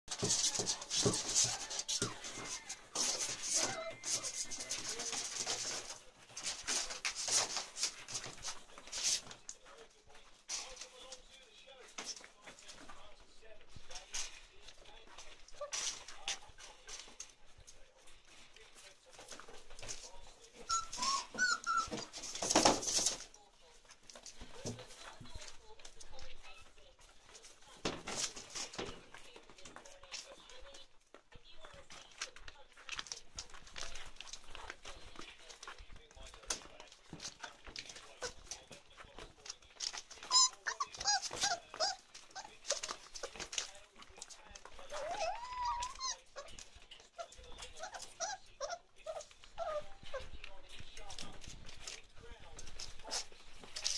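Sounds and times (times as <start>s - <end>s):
puppies whimpering and squeaking: 0.1s - 9.4s, 15.3s - 18.4s, 19.1s - 23.2s, 36.6s - 43.6s, 44.6s - 50.6s
paws scratching on newspaper: 0.1s - 53.9s.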